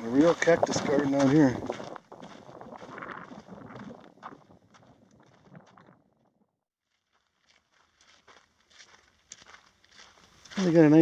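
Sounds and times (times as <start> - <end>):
footsteps on rocky dirt trail: 0.0 - 6.2, 6.9 - 11.0.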